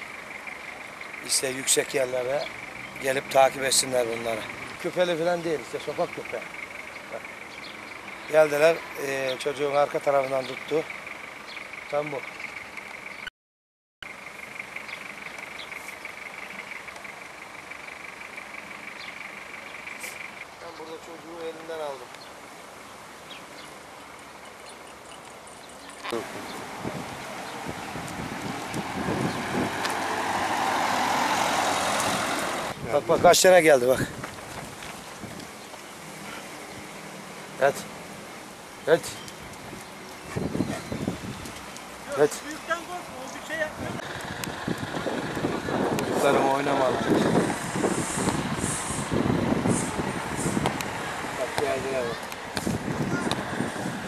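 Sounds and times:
road vehicle passing close: 0.0s - 13.2s, 26.1s - 39.0s, 41.1s - 54.0s.

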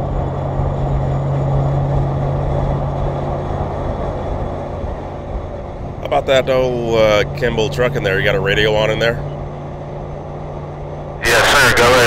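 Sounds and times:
constant low tone: 0.0s - 12.0s
road noise: 0.0s - 12.0s
vehicle engine hum: 0.0s - 12.0s.

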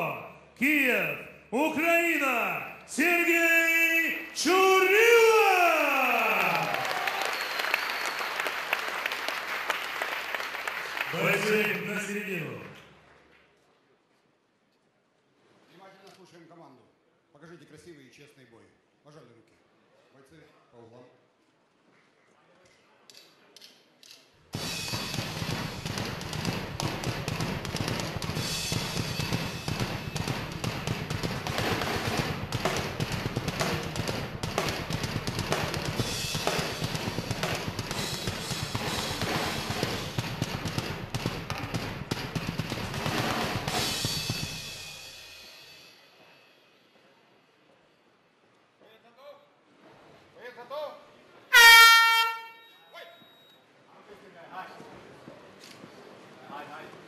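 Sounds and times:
loud music with driving drum beat: 24.6s - 45.2s
loud horn blast: 51.5s - 52.7s.

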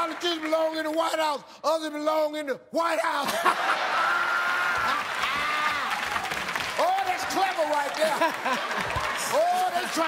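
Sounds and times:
clapping: 4.8s - 10.0s
audience laughing: 7.9s - 9.3s.

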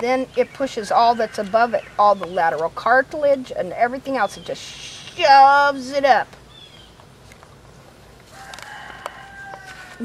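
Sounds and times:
rooster crowing: 8.3s - 10.0s.

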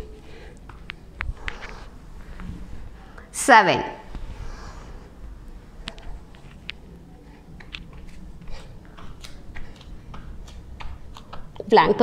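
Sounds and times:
low room rumble: 0.0s - 12.0s
soft rustles of movement: 0.2s - 3.3s, 4.0s - 11.6s.

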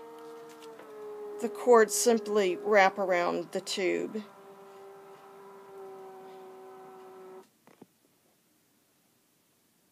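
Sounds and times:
motor humming: 0.0s - 7.4s.

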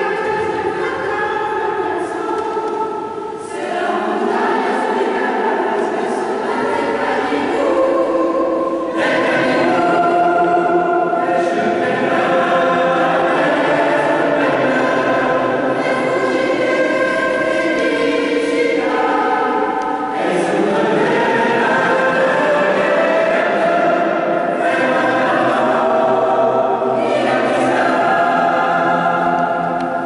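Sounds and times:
mixed choir singing: 0.0s - 30.0s.

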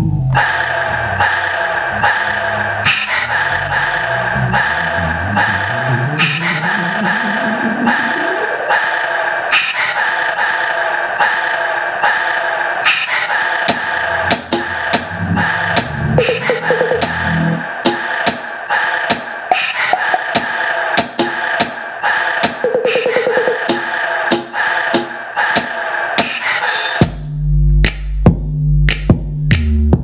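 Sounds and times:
rising pitch sweep: 0.0s - 8.7s, 13.8s - 17.8s
electronic beat: 13.6s - 18.5s, 19.1s - 21.8s, 22.4s - 26.4s, 27.0s - 30.0s
sharp percussive hits: 13.7s - 18.5s, 22.4s - 27.2s
looping sampled chord: 14.1s - 17.6s.

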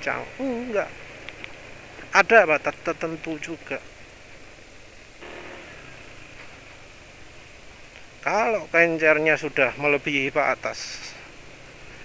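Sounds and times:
road noise: 0.0s - 12.0s
wind hiss: 0.0s - 12.0s
scooter engine running: 5.2s - 7.1s.

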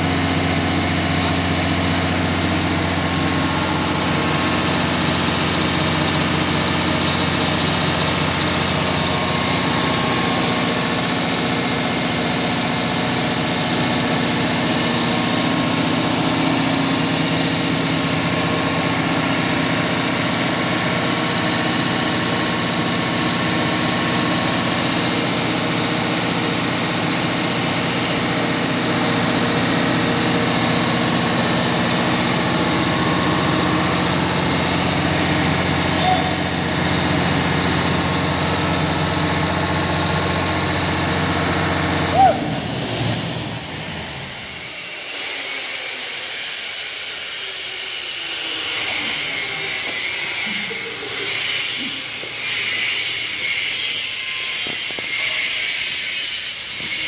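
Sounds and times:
diesel generator running: 0.0s - 44.9s, 47.0s - 55.2s.

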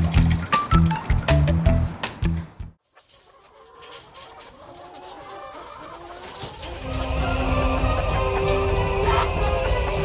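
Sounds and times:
chickens clucking: 2.8s - 10.0s.

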